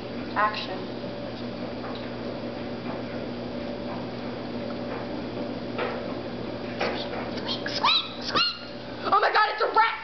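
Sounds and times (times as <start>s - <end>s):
steady low hum: 0.0s - 10.0s
child yipping like a puppy: 7.4s - 8.7s.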